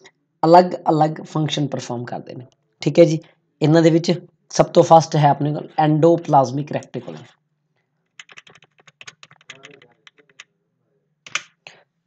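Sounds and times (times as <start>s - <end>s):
keyboard key presses: 8.2s - 10.4s, 11.3s - 11.6s.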